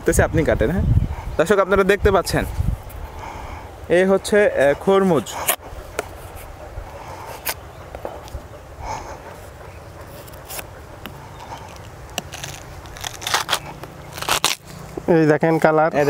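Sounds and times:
knife cutting melon rind: 10.0 - 15.0
melon cracking open: 11.5 - 15.0.

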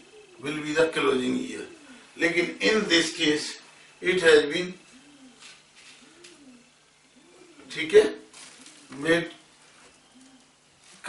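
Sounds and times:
pigeon cooing: 0.0 - 11.0.

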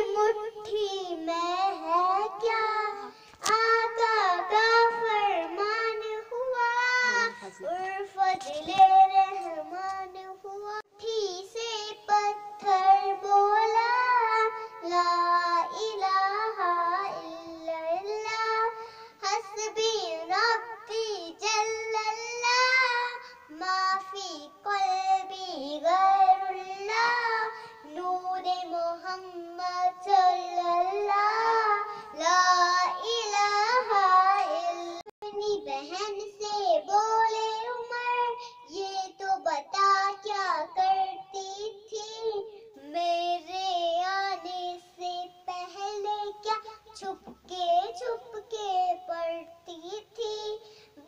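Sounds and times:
girl singing unaccompanied: 0.0 - 51.0.

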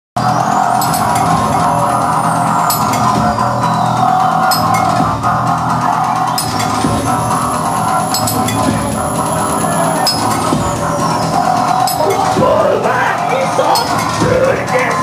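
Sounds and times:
metallic percussion hits: 0.2 - 5.6, 6.3 - 14.4
droning keyboard sound: 0.2 - 14.9.

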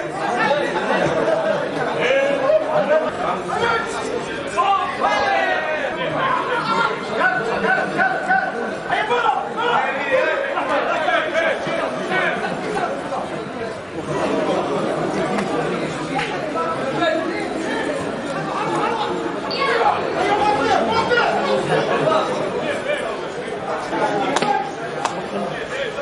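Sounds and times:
spectators chattering and calling out: 0.0 - 26.0.

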